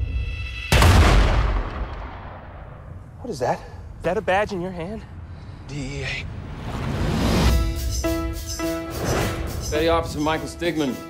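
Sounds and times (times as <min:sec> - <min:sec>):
gunshot boom with echo: 0:00.7 - 0:02.6.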